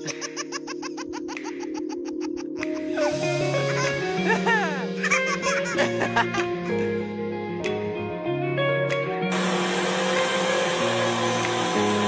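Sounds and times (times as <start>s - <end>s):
baby laughing: 0.0s - 6.9s
background music: 0.0s - 12.0s.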